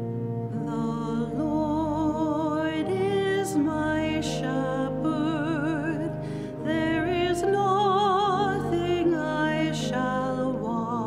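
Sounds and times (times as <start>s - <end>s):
church pipe organ chords: 0.0s - 11.0s.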